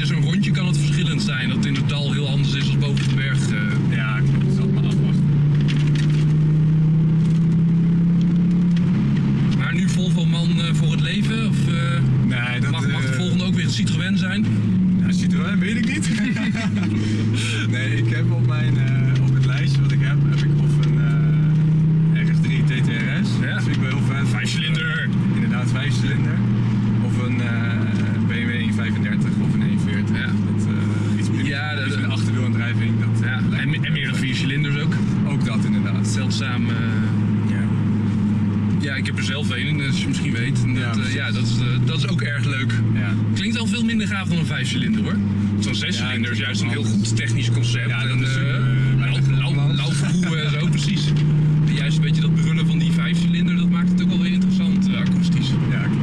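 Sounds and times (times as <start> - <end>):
car engine accelerating: 0.0 - 56.0.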